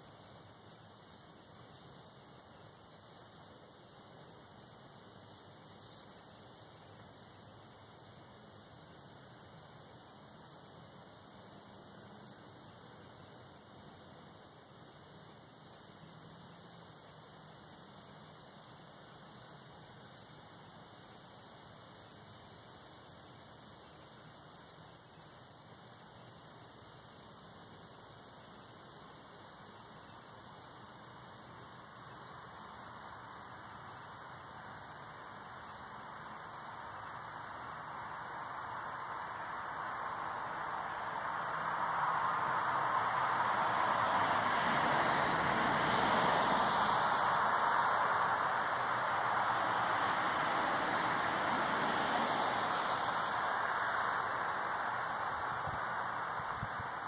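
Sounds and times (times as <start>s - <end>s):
high insect trill: 0.0s - 57.0s
lower pulsing insect trill: 0.0s - 57.0s.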